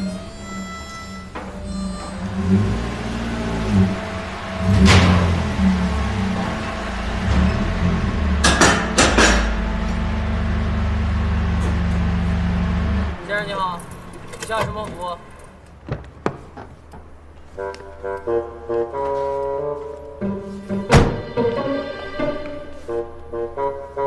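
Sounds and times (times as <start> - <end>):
car engine running and blipping: 0.0 - 13.2.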